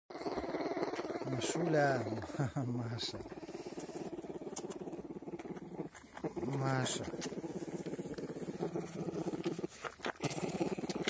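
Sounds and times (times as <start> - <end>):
bear cub humming purr: 0.1 - 11.0.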